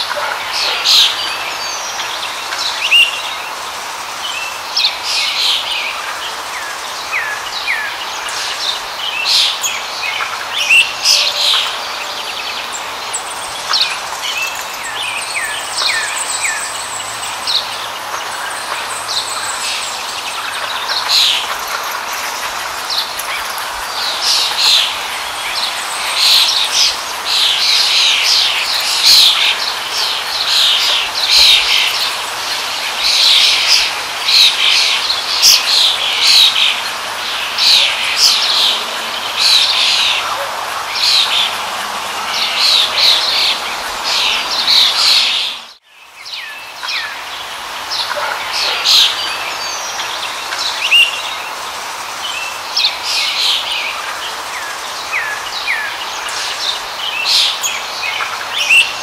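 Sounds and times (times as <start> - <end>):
running water: 0.0 - 45.7
birds chirping: 0.0 - 59.0.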